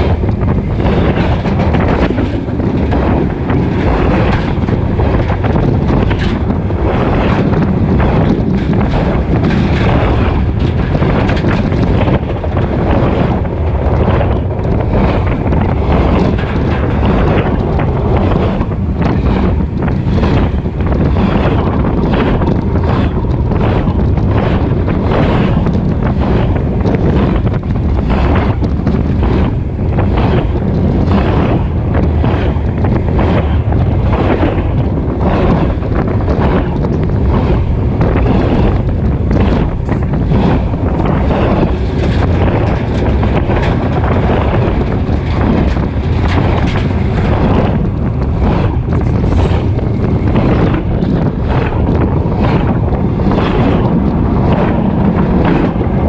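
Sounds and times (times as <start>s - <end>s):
steel wheels rumbling on rail: 0.0s - 56.0s
wind buffeting microphone: 0.0s - 56.0s.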